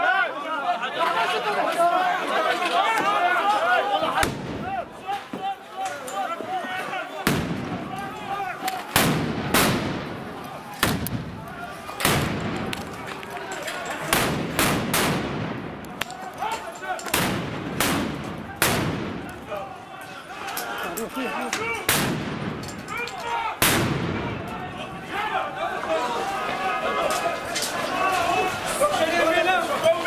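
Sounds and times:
loud gunshots with echo: 8.9 - 10.2, 14.1 - 15.8, 17.1 - 19.3
gunshots with echo: 14.1 - 15.7.

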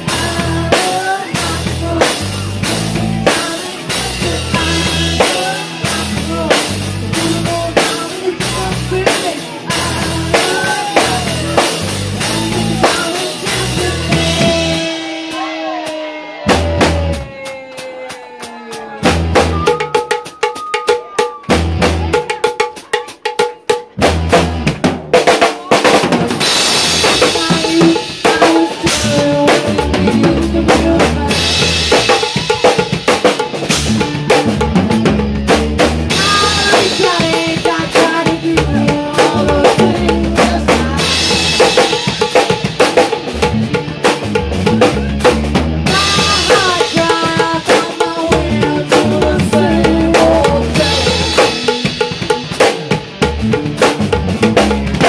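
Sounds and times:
electric guitar: 0.0 - 22.3, 25.6 - 55.0
live rock band: 0.0 - 55.0
loud drums: 0.0 - 55.0.

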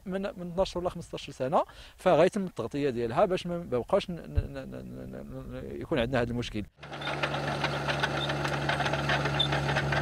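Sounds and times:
bulldozer diesel engine running: 6.8 - 10.0.

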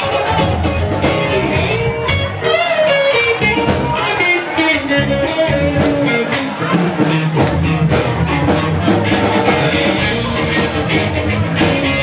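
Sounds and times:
guitar: 0.0 - 12.0
live band playing: 0.0 - 12.0.

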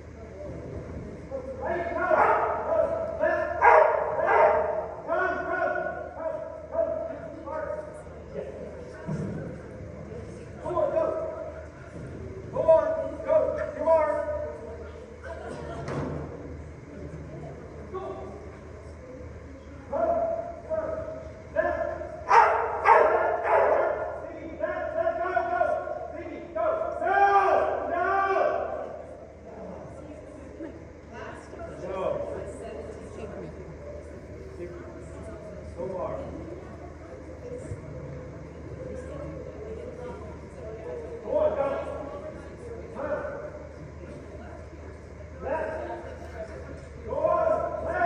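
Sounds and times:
dog barking: 2.1 - 3.0, 3.6 - 4.8, 22.3 - 24.1.

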